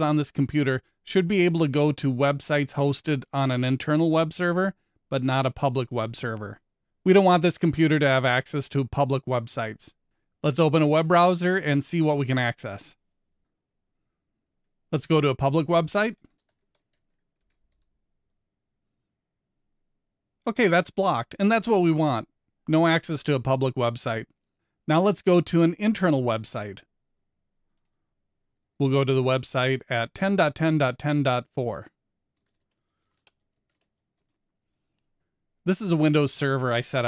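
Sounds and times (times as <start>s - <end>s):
faint keyboard typing: 16.0s - 18.0s, 27.7s - 28.0s, 32.3s - 35.3s.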